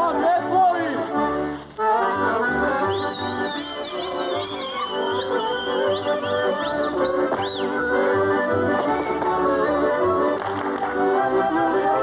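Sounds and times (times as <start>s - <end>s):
folk dance band with fiddle: 0.0s - 12.0s.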